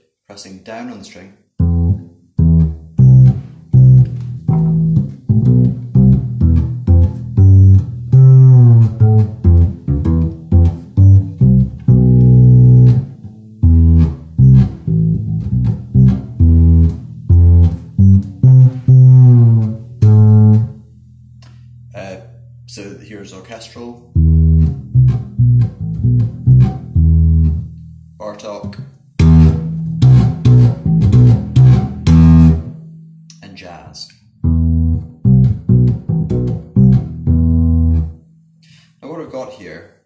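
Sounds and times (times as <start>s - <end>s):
upright bass plucked: 1.6s - 38.8s.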